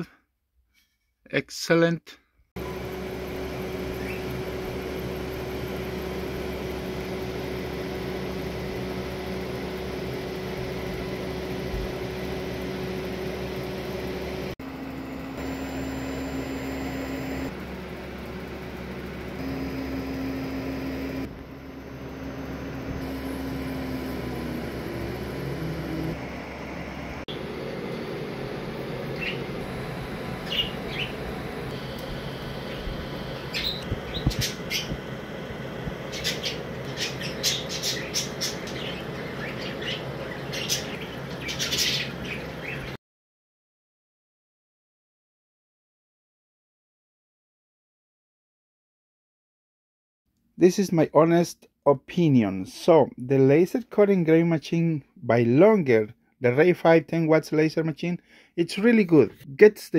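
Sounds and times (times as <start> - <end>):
laser engraver fan hum: 2.6 - 43.0
pitched motor tones: 2.6 - 43.0.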